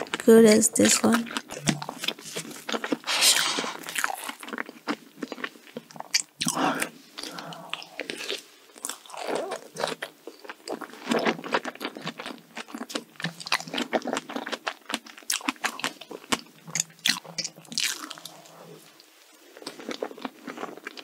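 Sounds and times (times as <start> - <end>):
person chewing cake: 0.8 - 21.0.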